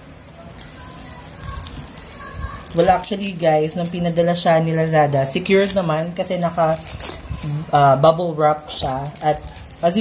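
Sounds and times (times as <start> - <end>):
plastic shrink wrap crackling: 0.4 - 10.0.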